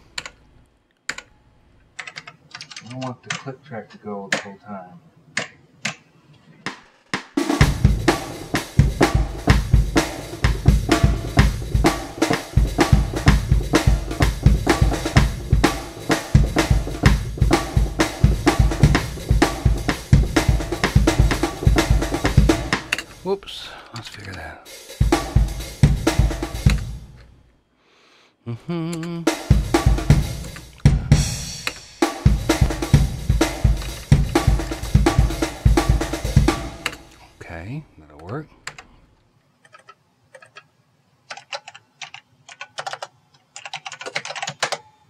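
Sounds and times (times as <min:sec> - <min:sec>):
drum kit groove: 0:06.7 - 0:27.3, 0:28.8 - 0:37.5.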